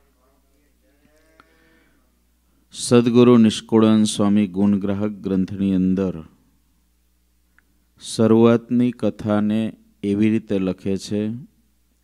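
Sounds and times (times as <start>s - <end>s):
low steady hum: 0.0s - 12.0s
faint click: 7.5s - 7.7s.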